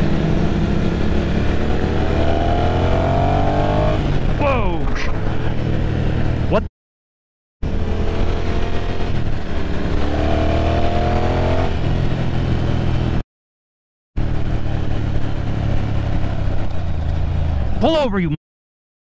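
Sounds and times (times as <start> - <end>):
motorcycle engine accelerating: 0.0 - 6.7, 7.6 - 13.2, 14.2 - 17.8
person shouting: 17.8 - 18.4.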